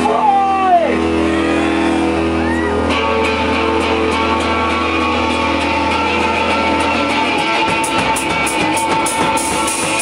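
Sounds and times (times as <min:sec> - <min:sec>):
electric guitars and bass droning chord: 0:00.0 - 0:10.0.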